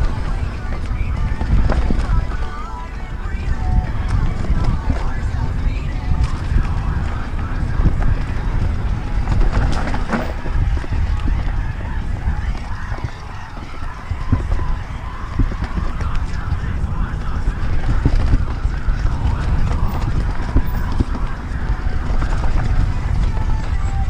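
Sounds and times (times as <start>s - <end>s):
bike rattling over rocks: 0.0s - 24.0s
wind buffeting microphone: 0.0s - 24.0s.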